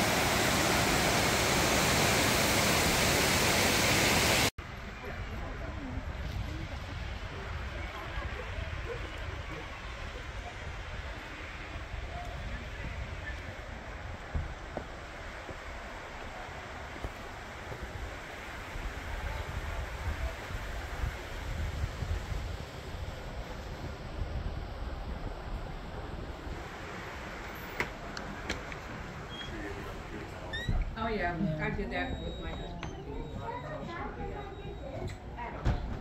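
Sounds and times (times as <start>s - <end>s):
faint indistinct voices: 4.6s - 14.7s, 22.6s - 36.0s.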